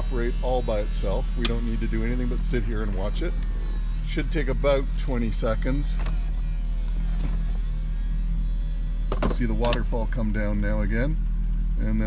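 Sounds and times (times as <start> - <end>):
convertible top motor whine: 0.0 - 12.0
low hum: 0.0 - 12.0.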